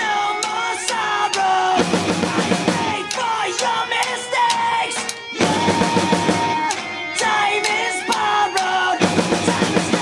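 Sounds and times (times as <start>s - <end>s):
acoustic drum kit playing: 0.0s - 10.0s
recorded rock music with guitar: 0.0s - 10.0s.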